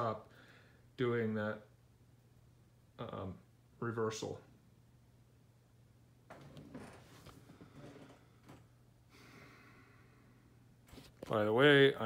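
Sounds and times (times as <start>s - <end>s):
low steady hum: 0.0s - 12.0s
soft rustles: 6.3s - 8.7s, 10.8s - 11.5s
person breathing faintly: 7.4s - 11.1s.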